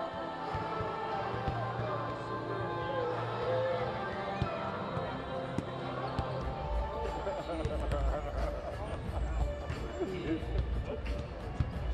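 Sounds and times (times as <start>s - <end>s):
background voices: 0.0s - 11.9s
faint music: 0.0s - 11.9s.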